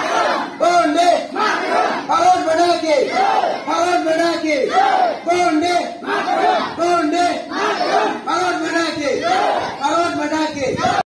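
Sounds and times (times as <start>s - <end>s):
children shouting in unison: 0.0s - 0.6s, 1.3s - 2.1s, 3.0s - 3.8s, 4.7s - 5.4s, 6.0s - 6.8s, 7.4s - 8.3s, 9.2s - 9.9s.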